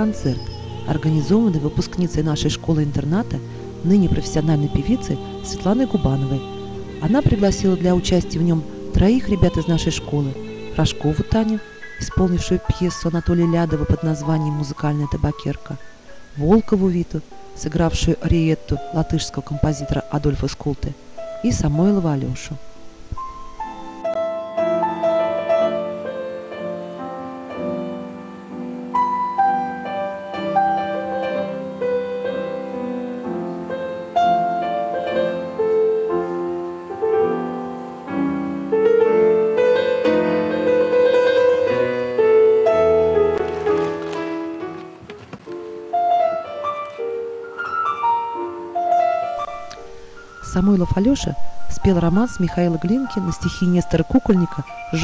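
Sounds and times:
solo classical piano piece: 0:00.0 - 0:55.0.

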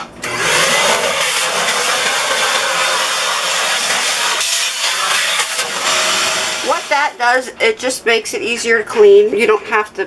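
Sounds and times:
vacuum cleaner running: 0:00.0 - 0:07.4.

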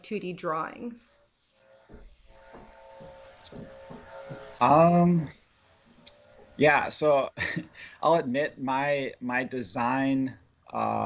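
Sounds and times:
faint voice sounds: 0:04.6 - 0:05.3, 0:06.6 - 0:11.0.

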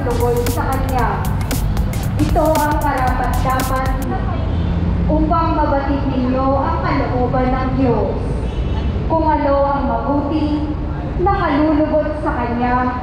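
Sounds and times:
steady low rumble: 0:00.0 - 0:04.1.

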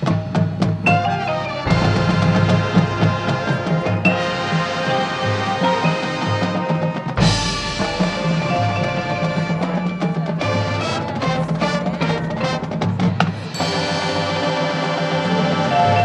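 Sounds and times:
marching band brass and winds: 0:00.0 - 0:16.0
percussion strikes: 0:00.0 - 0:16.0.

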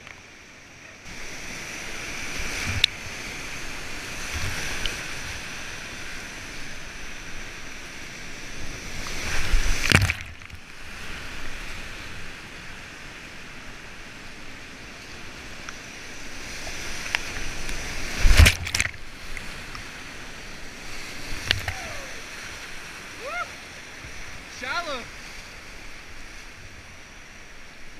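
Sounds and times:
water crashing: 0:00.1 - 0:14.1, 0:14.7 - 0:27.9
whitewater rapids rushing: 0:16.2 - 0:26.2.

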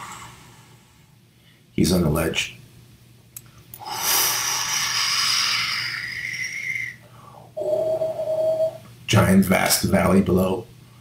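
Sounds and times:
breathy vocal whoosh: 0:03.8 - 0:07.0
brief steady tone: 0:07.6 - 0:08.8.

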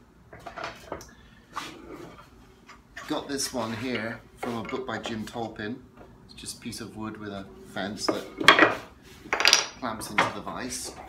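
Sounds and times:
wood scraping against wood: 0:01.5 - 0:05.5, 0:08.0 - 0:09.6.

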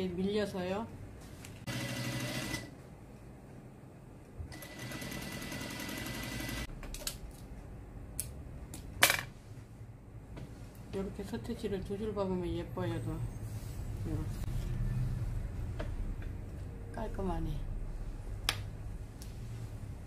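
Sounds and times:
sewing machine whine: 0:01.7 - 0:02.7, 0:04.5 - 0:06.7
sewing machine stitching: 0:04.5 - 0:06.7.

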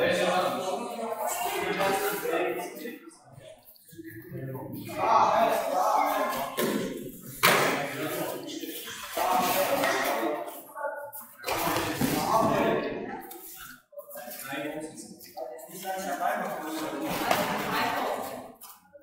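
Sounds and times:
people talking and calling out: 0:00.0 - 0:19.0.

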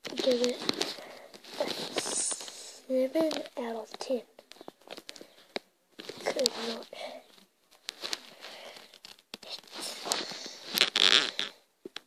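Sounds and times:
voice: 0:00.0 - 0:04.3, 0:06.2 - 0:07.2
rustling and crackling: 0:00.0 - 0:12.0.

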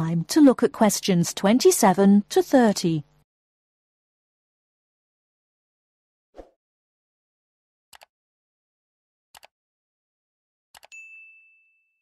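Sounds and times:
high bell-like ding: 0:10.9 - 0:12.0.

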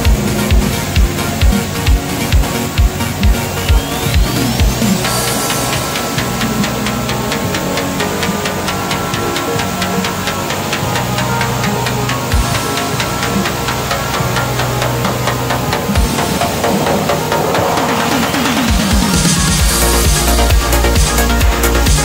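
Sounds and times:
electronic music with fast beat: 0:00.0 - 0:22.0.

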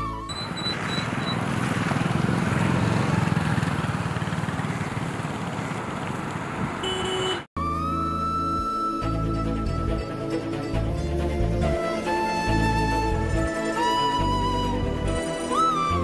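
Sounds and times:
road traffic rushing: 0:00.0 - 0:07.5
vehicle passing: 0:00.4 - 0:07.2
music: 0:07.6 - 0:16.0.

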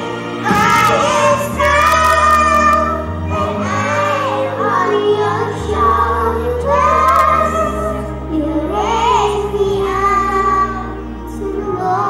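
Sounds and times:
children singing together: 0:00.0 - 0:12.0.

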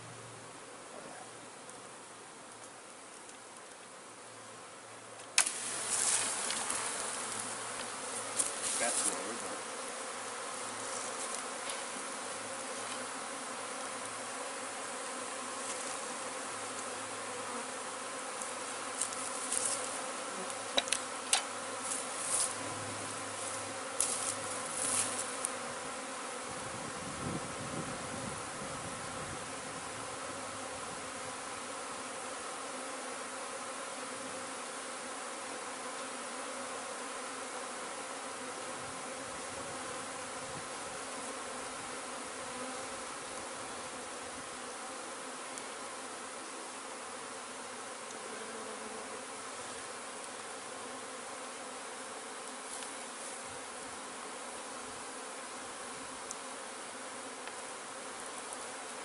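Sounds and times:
bee swarm buzzing: 0:00.0 - 0:59.0.

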